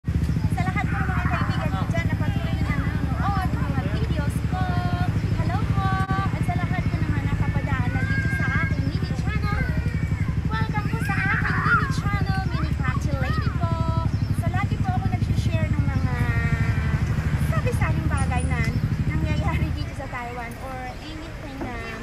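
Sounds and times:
engine idling: 0.0s - 22.0s
voices: 0.1s - 22.0s.

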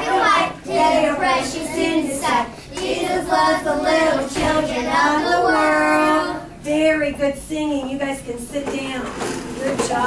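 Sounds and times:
children singing: 0.0s - 6.5s
children's voices hubbub: 0.0s - 6.6s.

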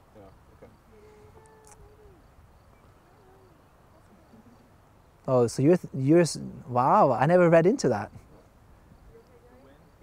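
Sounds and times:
low hooting bird call: 0.8s - 4.8s.

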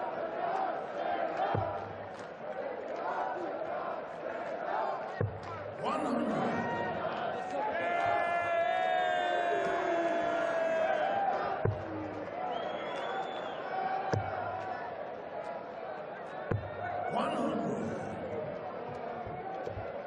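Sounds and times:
crowd singing: 0.0s - 12.7s, 16.9s - 19.4s
arena crowd noise: 0.0s - 20.0s.

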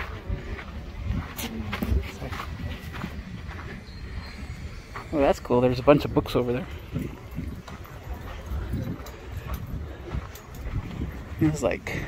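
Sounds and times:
faint voices: 0.0s - 12.0s
footsteps on sandy ground: 0.0s - 12.0s.

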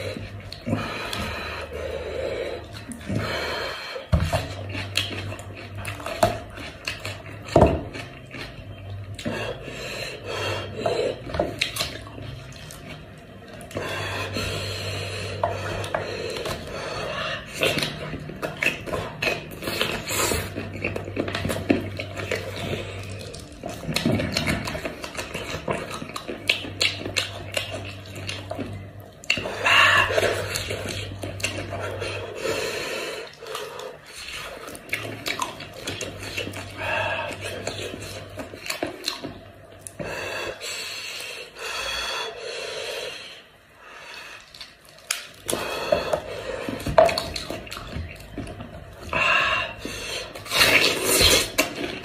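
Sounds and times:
low steady hum: 0.0s - 52.0s
chewing and lip smacks: 4.3s - 9.7s, 10.5s - 32.5s, 33.2s - 40.6s, 44.3s - 52.0s
meat and gristle tearing wetly: 15.0s - 32.5s, 33.2s - 40.6s, 44.2s - 52.0s
wet squelching and tearing meat: 44.2s - 52.0s.

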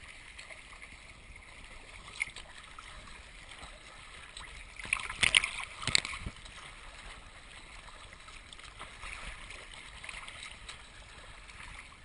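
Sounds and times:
paddle strokes splashing: 0.0s - 12.0s
water sloshing and lapping: 0.0s - 12.0s.

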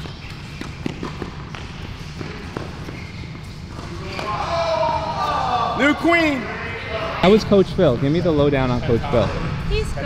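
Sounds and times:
tennis balls hit and bouncing: 0.0s - 4.8s.

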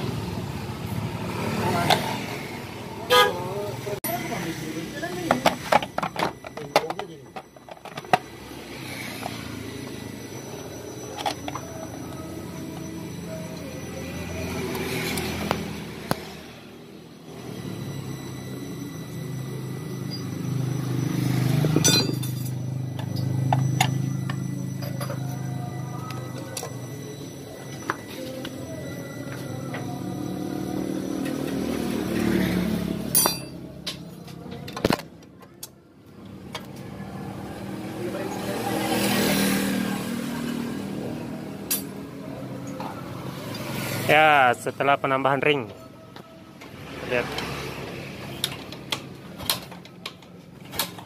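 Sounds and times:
motor vehicle engine: 0.0s - 35.3s, 36.0s - 51.0s
hand tool clinking on metal: 21.7s - 25.3s, 33.1s - 34.4s.

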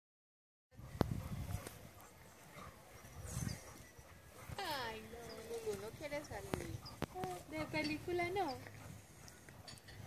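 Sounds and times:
quiet outdoor background: 0.7s - 10.0s.

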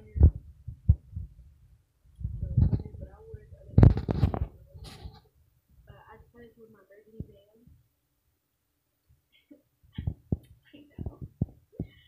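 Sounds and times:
dull low thumps: 0.0s - 4.6s, 10.0s - 12.0s
faint low rumble: 0.0s - 7.9s.

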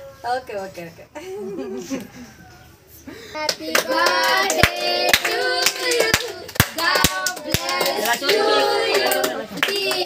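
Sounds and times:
girls and women singing: 3.4s - 10.0s.

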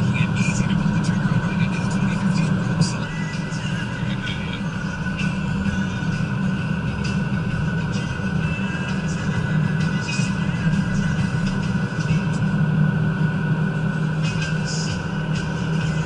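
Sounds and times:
person's voice: 0.0s - 4.9s
road and engine noise in car: 0.0s - 16.0s.

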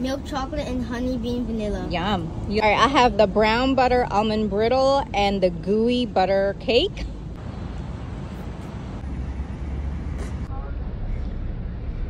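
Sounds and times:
street traffic hiss and rumble: 0.0s - 12.0s.

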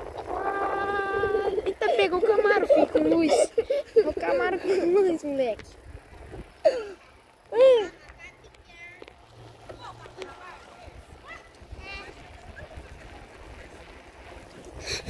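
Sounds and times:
wind rumble: 0.0s - 7.6s, 9.2s - 15.0s
bicycle rolling noise: 0.0s - 15.0s.

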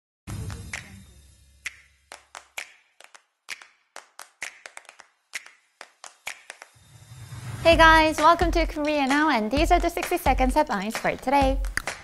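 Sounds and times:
sharp hand claps: 1.6s - 6.8s, 11.0s - 12.0s.

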